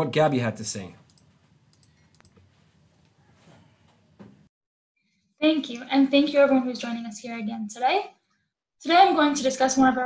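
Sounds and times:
faint small clicks: 1.0s - 2.4s.

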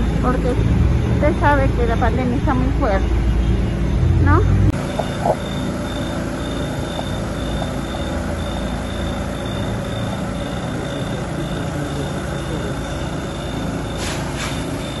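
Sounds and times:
engine running steadily: 0.0s - 15.0s.

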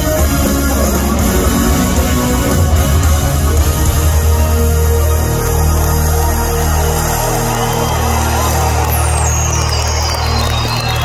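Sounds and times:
live rock band holding a chord: 0.0s - 8.9s
deep steady bass drone: 0.0s - 11.0s.

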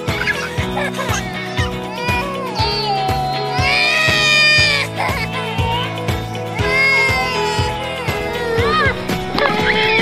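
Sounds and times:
background music with steady beat: 0.0s - 10.0s
baby crying: 0.2s - 10.0s.

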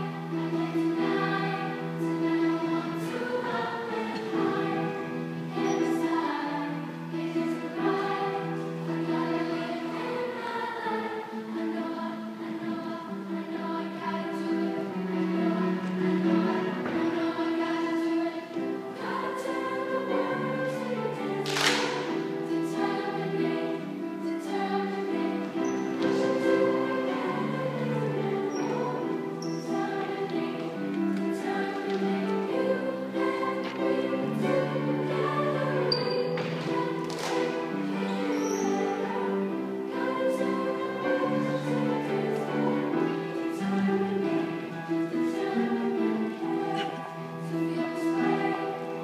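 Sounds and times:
accompanying music: 0.0s - 49.0s
choir singing in harmony: 0.0s - 49.0s.

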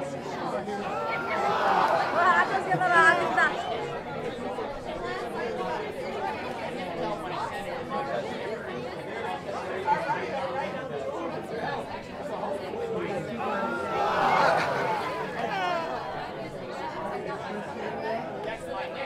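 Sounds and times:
children chattering and calling out: 0.8s - 7.9s, 12.2s - 17.8s.

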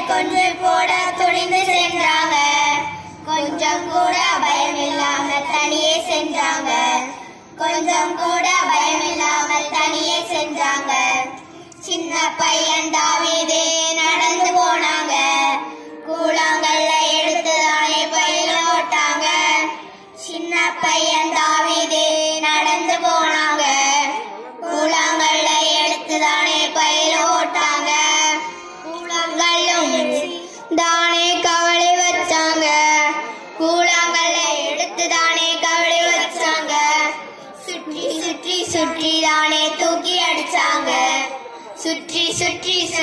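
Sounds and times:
children singing into microphones: 0.0s - 43.0s.

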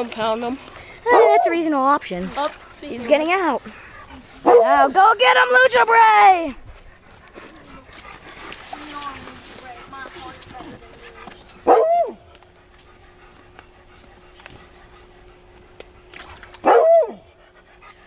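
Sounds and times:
dog barking: 1.1s - 1.5s, 4.4s - 4.9s, 11.6s - 12.2s, 16.6s - 17.3s.

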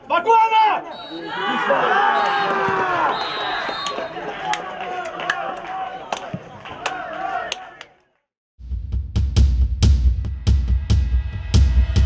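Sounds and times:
football players shouting: 0.0s - 8.0s.

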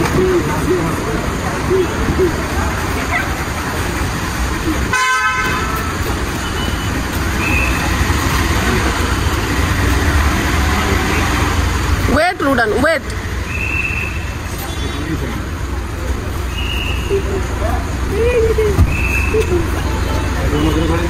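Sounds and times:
scattered voices: 0.0s - 13.2s
traffic rumble: 0.0s - 21.0s
car horn toot: 4.9s - 7.8s, 19.0s - 21.0s.

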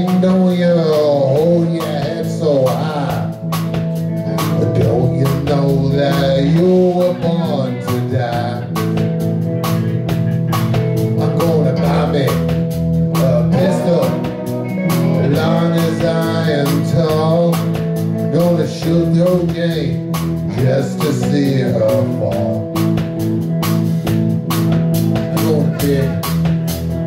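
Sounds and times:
lead guitar bending notes: 0.0s - 27.0s
live blues band playing: 0.0s - 27.0s.

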